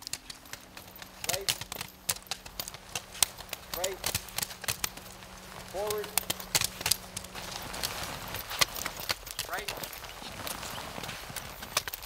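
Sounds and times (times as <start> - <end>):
probes crunching into snow: 0.0 - 12.0.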